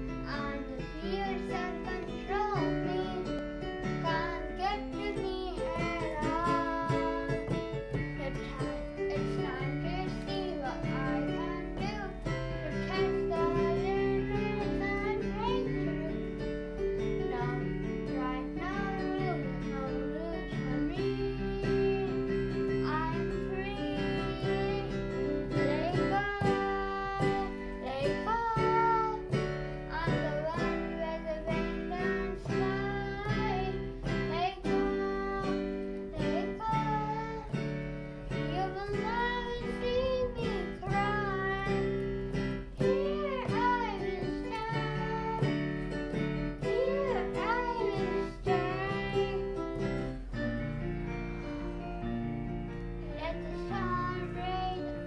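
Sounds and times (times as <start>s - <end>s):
person singing: 0.0s - 45.7s, 46.4s - 50.2s, 53.0s - 55.0s
digital piano chords and melody: 0.0s - 55.0s.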